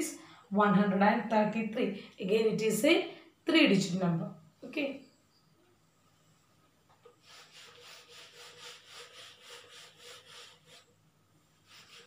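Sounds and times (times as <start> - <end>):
whiteboard eraser rubbing: 7.0 - 10.9, 11.6 - 12.0.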